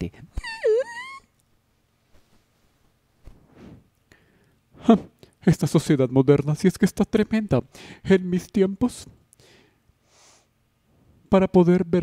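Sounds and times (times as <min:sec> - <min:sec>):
high-pitched wail: 0:00.4 - 0:01.3.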